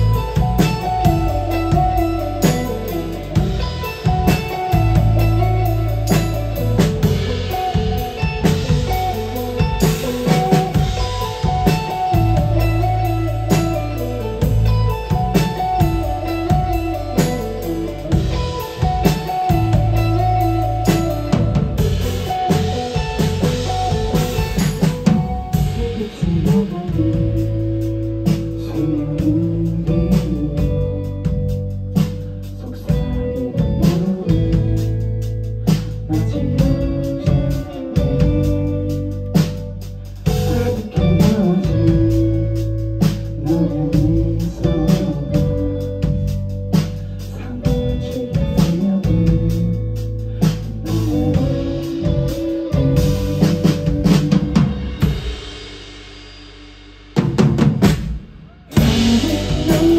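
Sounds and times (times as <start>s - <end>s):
live band playing: 0.0s - 59.9s.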